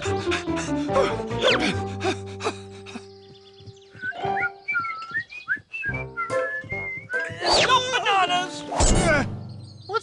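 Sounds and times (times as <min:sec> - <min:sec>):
cartoon background music: 0:00.0 - 0:03.0, 0:03.9 - 0:05.0, 0:05.8 - 0:10.0
whistled tune: 0:03.9 - 0:07.5.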